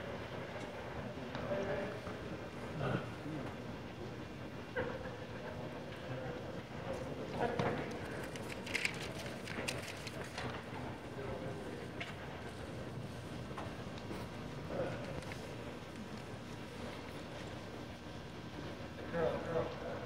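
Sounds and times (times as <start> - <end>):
background chatter of people: 0.0 - 20.0.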